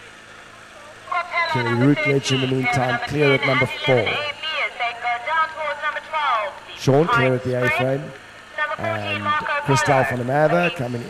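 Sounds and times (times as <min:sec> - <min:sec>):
person talking: 0:01.1 - 0:11.0.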